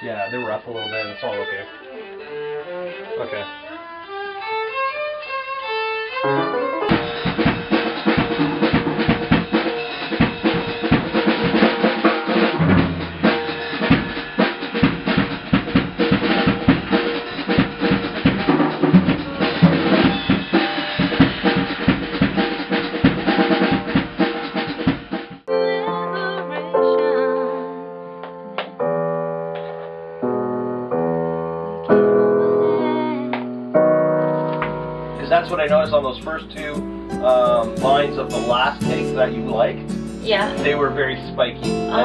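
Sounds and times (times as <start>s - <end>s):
violin melody: 0.0s - 7.5s, 34.4s - 42.0s
drum kit driving rhythm: 6.3s - 25.5s, 34.6s - 42.0s.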